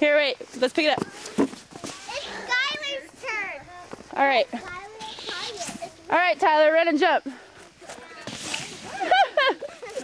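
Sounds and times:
children playing: 1.0s - 6.1s, 7.9s - 10.0s.

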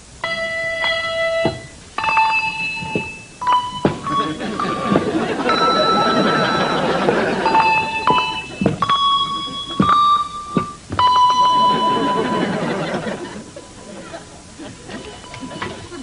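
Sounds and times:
handbells playing slow melody: 0.2s - 13.8s, 14.9s - 16.0s.

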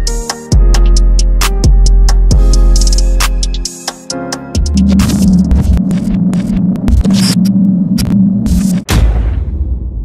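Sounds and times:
loud hit into low rumble: 8.8s - 10.0s.

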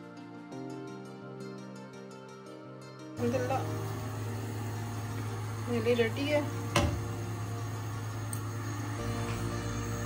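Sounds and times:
woman speaking: 3.2s - 3.8s, 5.6s - 6.6s
extractor fan humming: 3.2s - 10.0s.

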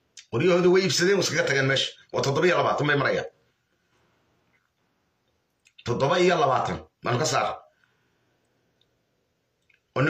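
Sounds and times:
faint room hum: 0.0s - 10.0s
man speaking: 0.2s - 3.4s, 5.8s - 7.8s.

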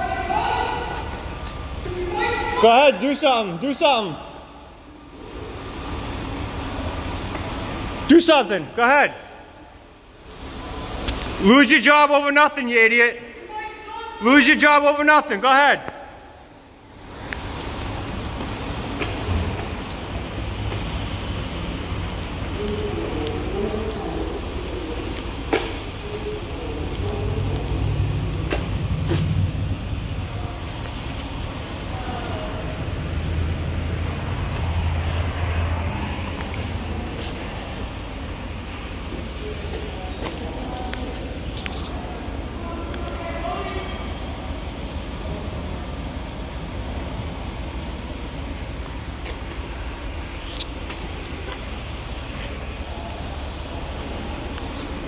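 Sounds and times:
low vehicle rumble: 16.2s - 55.0s.

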